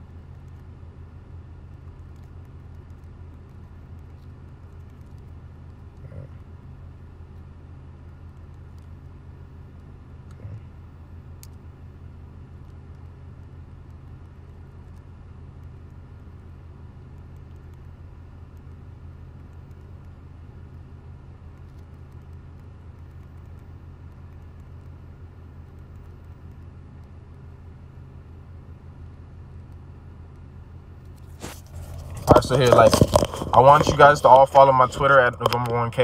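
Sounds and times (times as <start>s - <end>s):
car cabin low hum: 30.6s - 36.0s.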